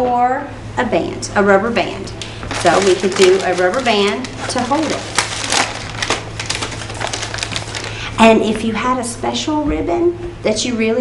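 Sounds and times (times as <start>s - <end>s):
paper bag crinkling: 2.2s - 8.1s.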